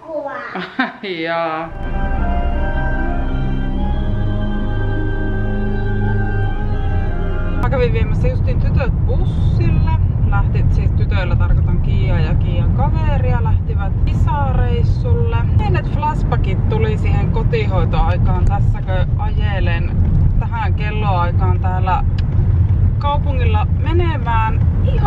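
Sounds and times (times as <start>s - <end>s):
car road and engine rumble: 1.7s - 25.0s
woman talking: 7.6s - 22.1s, 23.0s - 25.0s.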